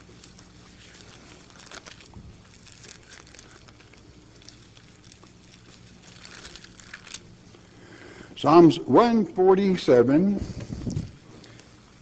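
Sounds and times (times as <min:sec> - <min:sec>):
thin pages being turned: 0:00.0 - 0:07.7
low electrical hum: 0:00.0 - 0:12.0.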